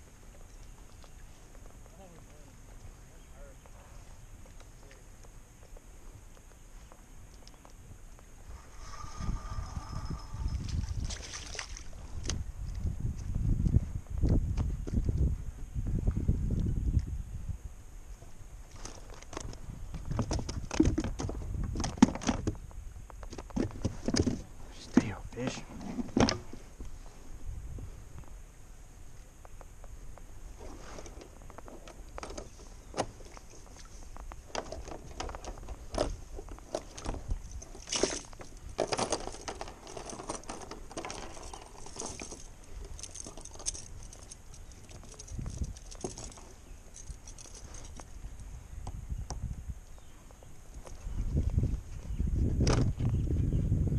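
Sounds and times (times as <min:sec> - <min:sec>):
man talking indistinctly: 0:24.8 - 0:25.7
handling clicks and knocks: 0:34.2 - 0:48.1.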